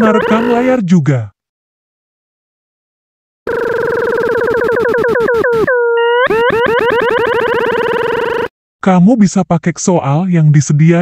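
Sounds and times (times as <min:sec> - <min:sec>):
electronic tone sweeping in pitch: 0:04.3 - 0:08.5.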